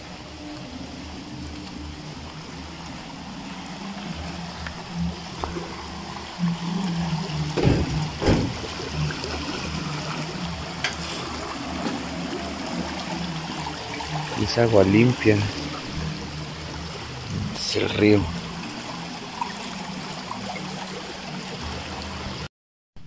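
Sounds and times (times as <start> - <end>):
river water flowing: 0.0 - 22.5
loud short bumps: 7.6 - 8.7.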